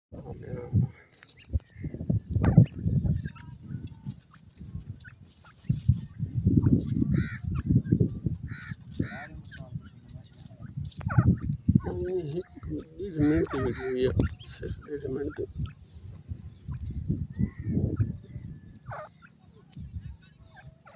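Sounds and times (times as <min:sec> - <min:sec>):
francolins calling: 0:00.9 - 0:20.9.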